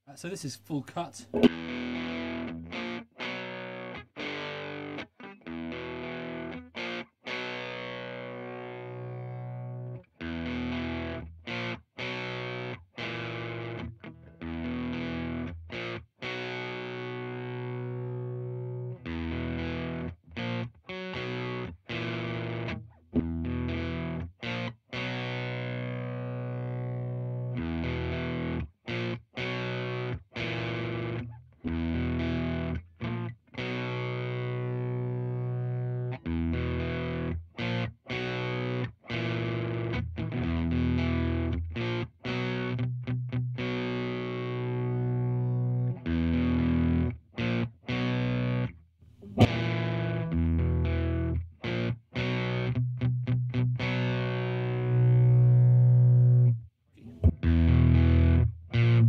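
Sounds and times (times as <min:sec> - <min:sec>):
distorted electric guitar riff: 0:01.2 - 0:59.0.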